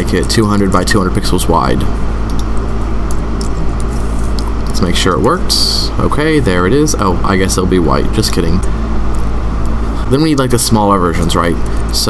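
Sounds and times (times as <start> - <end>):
low hum and rumble: 0.0 - 12.0
keyboard typing clicks: 2.3 - 2.5.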